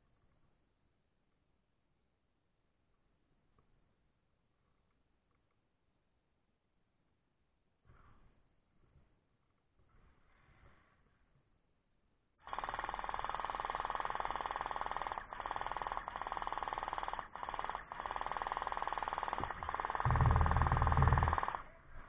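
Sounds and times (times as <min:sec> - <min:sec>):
gel blaster full auto rattle: 0:12.5 - 0:21.7.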